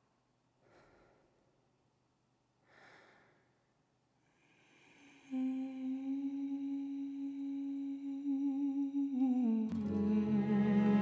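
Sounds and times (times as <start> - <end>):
musical accompaniment: 9.8 - 11.0.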